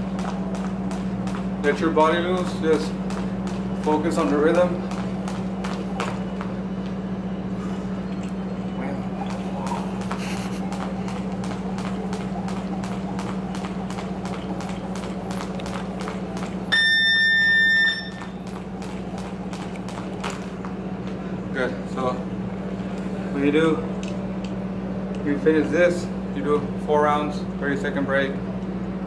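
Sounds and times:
jump rope slapping floor: 0:00.0 - 0:07.0, 0:09.1 - 0:21.2
constant low hum: 0:00.0 - 0:29.0
loud electronic beep: 0:16.7 - 0:18.2.

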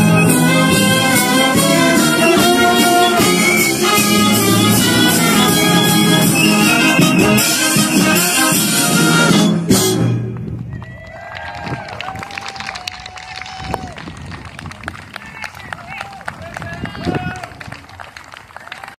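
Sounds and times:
scattered applause: 0:10.6 - 0:19.0.

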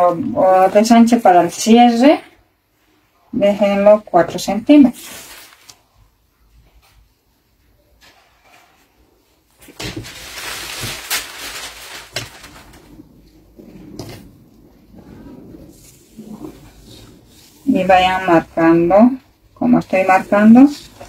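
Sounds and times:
paper rustling: 0:04.8 - 0:06.0, 0:09.5 - 0:14.3.

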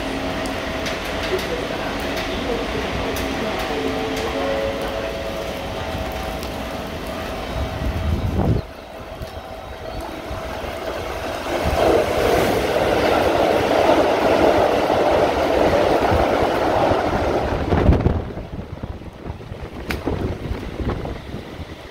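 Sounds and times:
train wheels rushing on rails: 0:00.0 - 0:21.9
wind buffeting microphone: 0:05.7 - 0:21.9.

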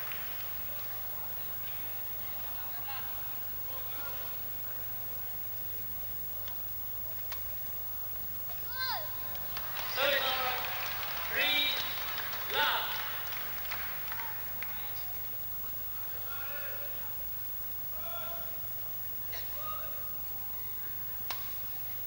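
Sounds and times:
crowd noise: 0:00.0 - 0:22.0.

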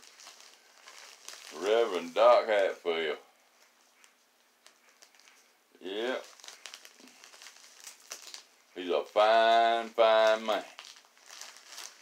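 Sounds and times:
envelope crinkling and rustling: 0:00.0 - 0:02.8, 0:03.6 - 0:12.0.

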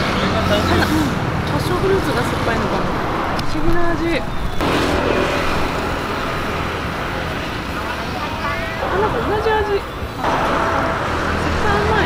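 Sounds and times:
street traffic roar: 0:00.0 - 0:12.0.

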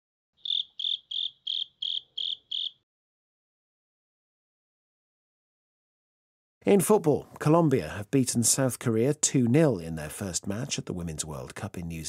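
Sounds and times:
cricket chirping: 0:00.4 - 0:02.8.

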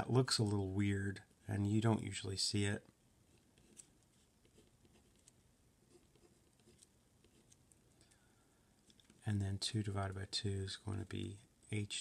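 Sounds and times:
pen scratching on paper: 0:03.3 - 0:07.6.

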